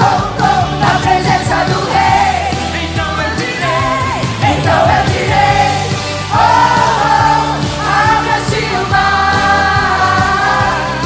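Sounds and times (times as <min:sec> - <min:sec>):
group singing gospel song: 0:00.0 - 0:11.0
steady drum beat: 0:00.0 - 0:11.0.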